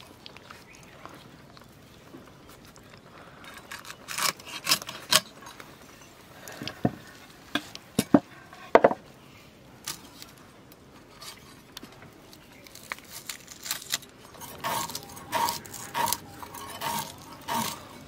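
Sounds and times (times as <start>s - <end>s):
fish scales scraping on blade: 14.4s - 18.0s.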